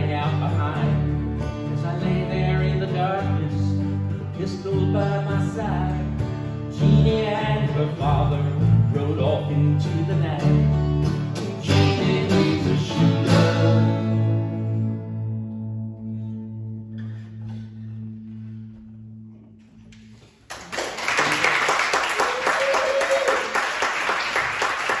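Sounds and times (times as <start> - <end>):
acoustic guitars strumming chords: 0.0 - 20.2
audience applause: 20.5 - 25.0.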